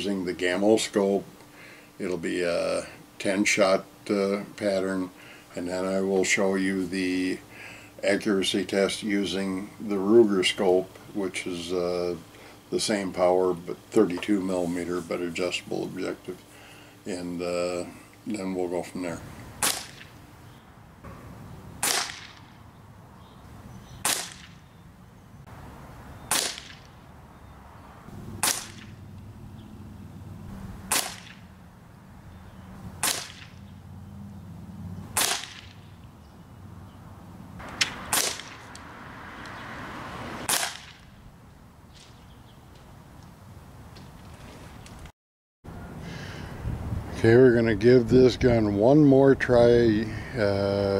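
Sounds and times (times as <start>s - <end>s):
pellet rifle shots cracking: 19.6s - 20.2s, 21.8s - 22.6s, 24.0s - 24.7s, 26.3s - 27.0s, 28.4s - 29.1s, 30.8s - 31.5s, 33.0s - 33.6s, 35.1s - 35.9s, 37.6s - 38.8s, 40.4s - 41.1s.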